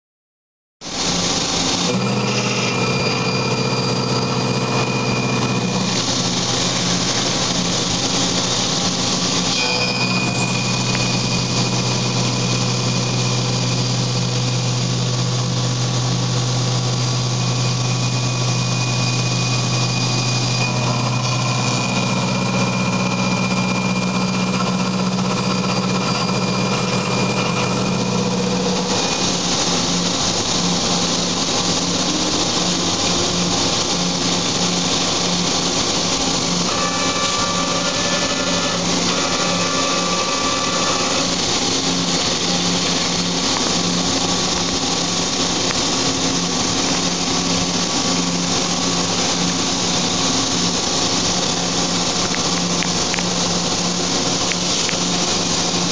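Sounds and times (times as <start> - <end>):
high hiss: 0.8 - 3.4, 4.3 - 24.2, 26.4 - 55.9
milling machine cutting metal: 0.8 - 55.9.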